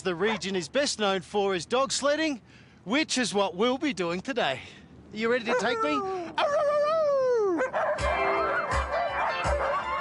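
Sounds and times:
dogs barking: 0.1 - 0.6, 5.5 - 6.0, 7.6 - 10.0
dog howling: 5.5 - 10.0
music with steady beat: 8.0 - 10.0.

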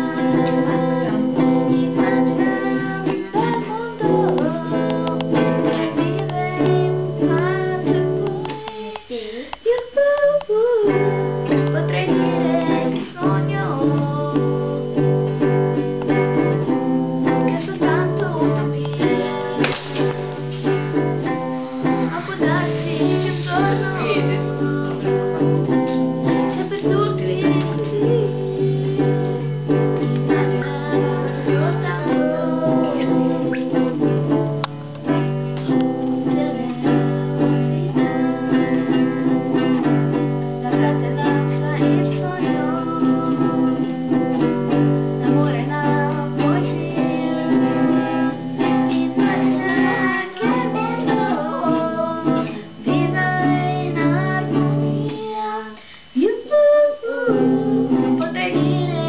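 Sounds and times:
acoustic guitar chords: 0.0 - 59.0.

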